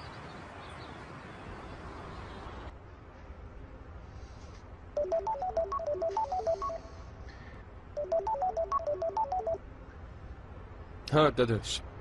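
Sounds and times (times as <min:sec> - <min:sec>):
melodic phone ringtone: 0:05.0 - 0:07.2, 0:08.0 - 0:09.6.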